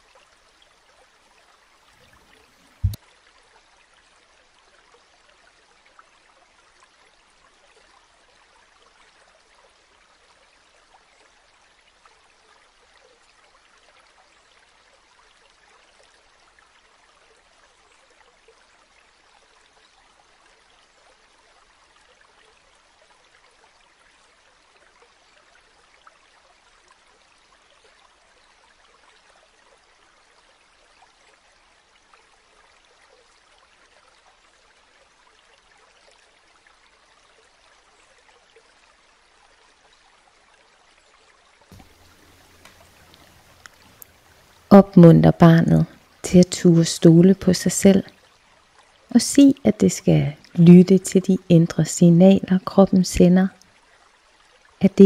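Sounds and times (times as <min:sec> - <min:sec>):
trickling water: 0:00.0 - 0:55.0.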